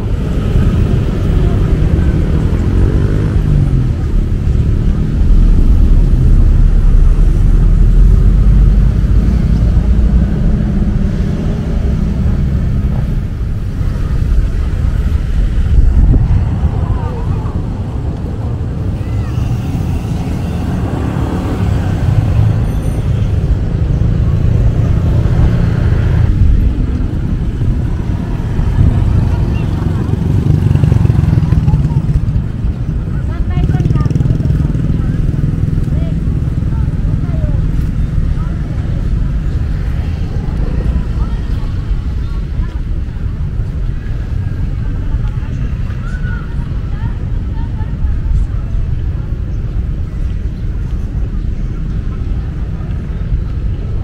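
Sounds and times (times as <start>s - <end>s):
cars and motorcycles passing: 0.0s - 54.0s.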